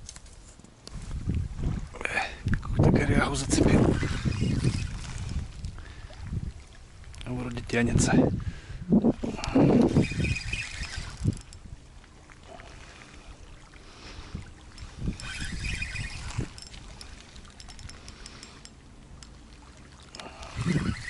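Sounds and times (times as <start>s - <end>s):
small waves lapping: 0.9s - 21.0s
fishing reel and rod handled: 2.4s - 5.8s, 9.2s - 11.7s, 14.2s - 21.0s.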